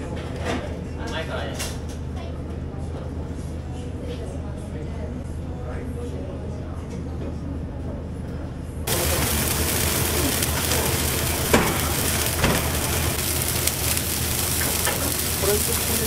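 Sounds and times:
room murmur: 0.0s - 16.0s
pan sizzling and bubbling: 8.9s - 16.0s.

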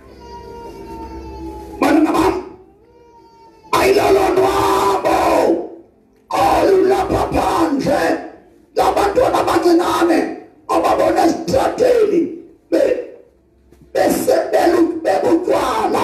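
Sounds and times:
man preaching through loudspeaker: 1.7s - 2.7s, 3.7s - 13.3s, 13.9s - 16.0s.

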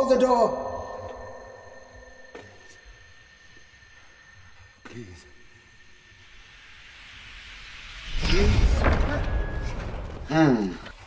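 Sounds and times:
tense soundtrack drone: 0.0s - 11.0s.

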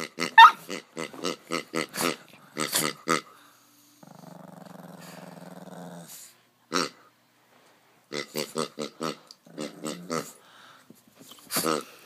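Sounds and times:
dog barking: 0.4s - 0.6s
dog growling: 4.0s - 7.1s, 8.2s - 10.4s.

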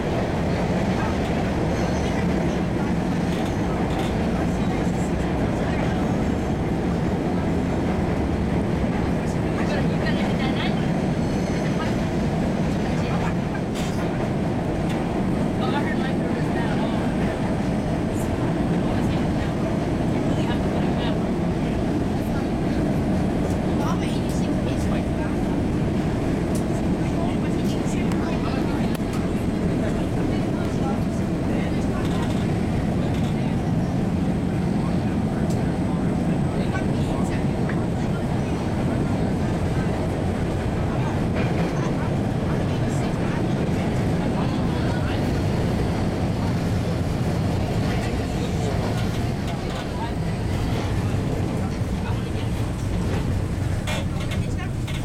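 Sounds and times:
subway train rumbling on rails: 0.0s - 55.0s.

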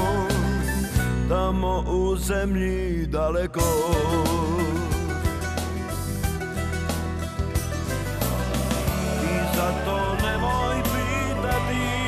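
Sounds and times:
double bass line: 0.0s - 12.0s
plucked strings: 3.6s - 12.0s.

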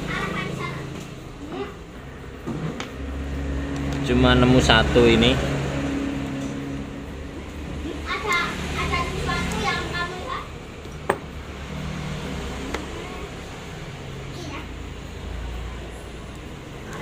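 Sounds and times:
steady low hum: 0.7s - 9.8s.

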